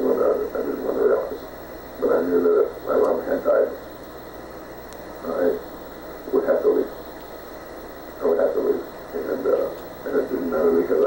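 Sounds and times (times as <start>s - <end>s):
man speaking on muffled tape: 0.0s - 4.1s, 5.0s - 7.4s, 8.0s - 11.0s.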